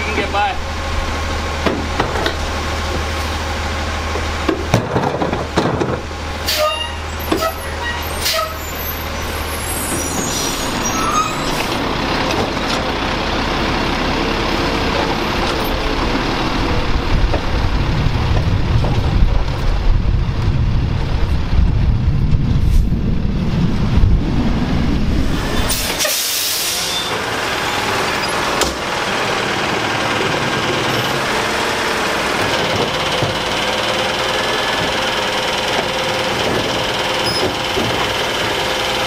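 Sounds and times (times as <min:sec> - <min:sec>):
garbage truck engine running: 0:00.0 - 0:39.0.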